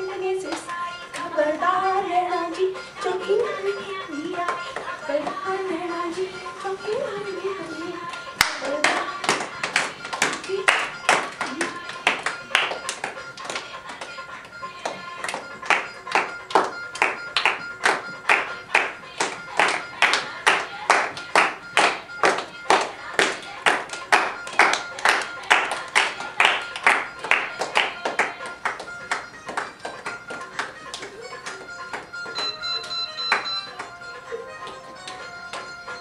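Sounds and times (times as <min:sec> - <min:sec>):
group clapping in rhythm: 0:00.1 - 0:01.6, 0:02.5 - 0:36.0.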